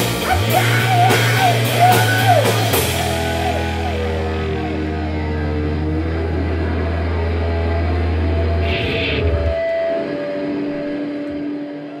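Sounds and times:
bass drone: 0.0 - 12.0
sustained guitar tones: 0.0 - 12.0.

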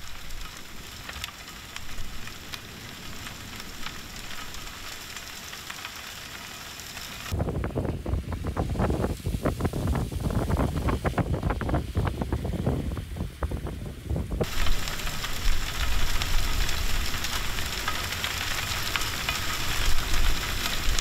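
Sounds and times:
sand slurry hissing through pipeline: 0.0 - 7.4, 8.3 - 13.2, 14.4 - 21.0
wind buffeting microphone: 7.3 - 17.8.

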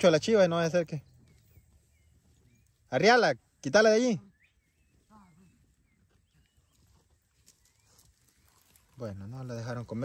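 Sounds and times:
faint bird chirps: 0.4 - 9.2.

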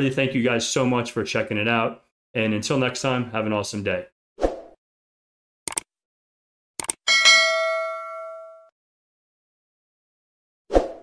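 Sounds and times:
notification bell chime: 7.1 - 8.7.

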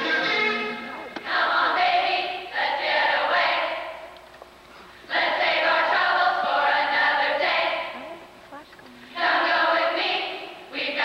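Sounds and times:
choir of women singing: 1.2 - 4.1, 5.1 - 8.0, 9.1 - 11.0.

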